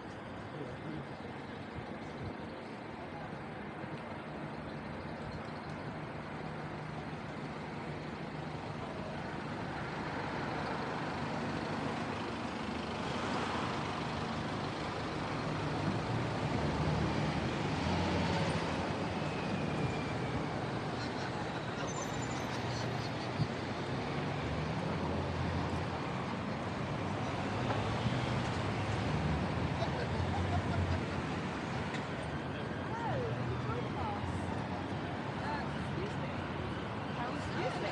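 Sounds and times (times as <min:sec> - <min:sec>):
road traffic passing: 0:00.0 - 0:37.9.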